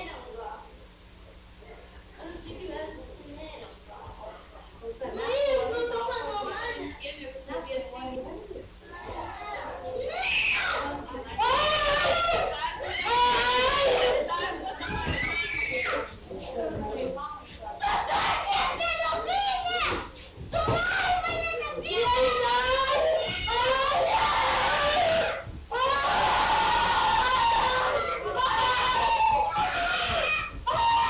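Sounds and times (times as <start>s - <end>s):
child crying and wailing: 11.4s - 14.2s, 21.9s - 31.0s.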